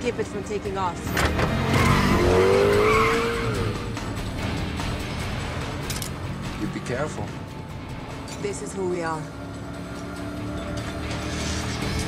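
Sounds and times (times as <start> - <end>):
car speeding: 0.0 - 12.0
film score music: 0.0 - 12.0.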